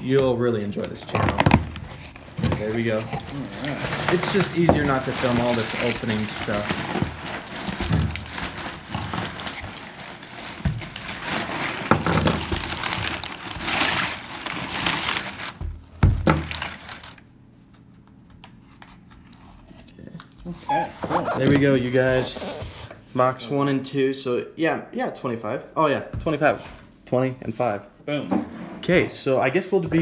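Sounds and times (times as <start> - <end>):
packing paper crinkling: 0.0 - 15.7, 16.3 - 17.3.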